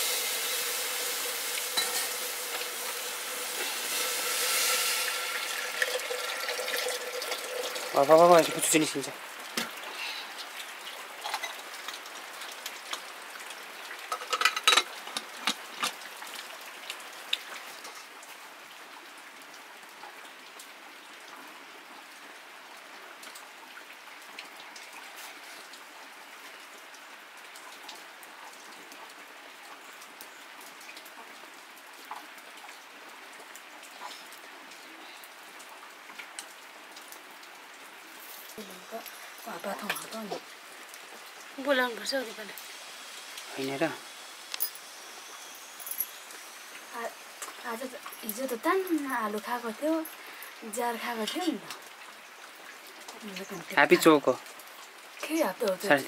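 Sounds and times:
soft hiss: 0.0s - 13.8s, 38.0s - 56.0s
pot and lid clattering: 0.1s - 7.8s, 14.1s - 15.6s.

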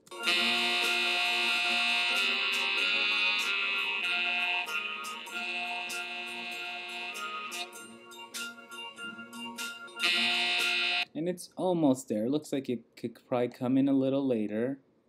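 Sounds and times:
looped music with chords and beat: 0.0s - 11.0s.

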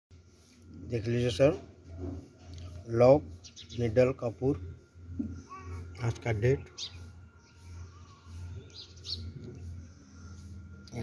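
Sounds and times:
steady low hum: 0.2s - 11.0s
bird chirping: 1.9s - 11.0s.

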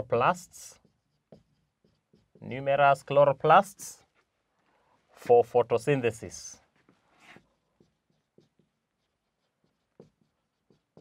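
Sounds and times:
marker pen on whiteboard: 0.0s - 11.0s.

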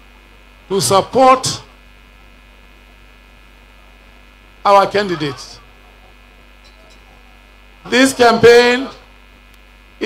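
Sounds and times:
electrical mains hum: 0.0s - 10.0s
man speaking through microphones: 0.7s - 1.8s, 4.6s - 5.8s, 7.8s - 9.1s.

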